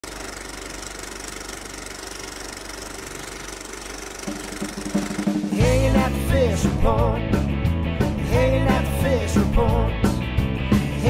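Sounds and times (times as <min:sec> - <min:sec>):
film projector clatter: 0:00.0 - 0:05.6
rock music with singing: 0:05.2 - 0:11.0.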